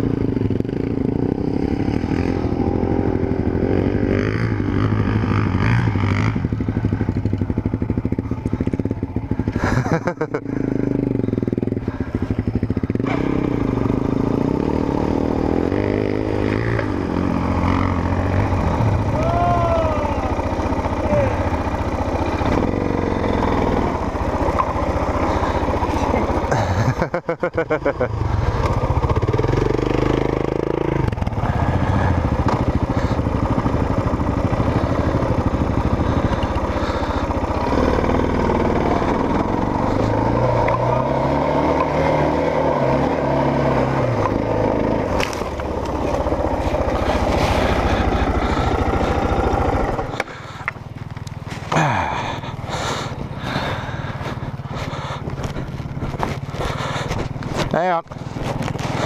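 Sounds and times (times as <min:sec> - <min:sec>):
motorcycle engine revving: 0:00.0 - 0:59.0
gravel clattering under tyres: 0:23.8 - 0:28.0, 0:31.1 - 0:38.0, 0:44.2 - 0:59.0.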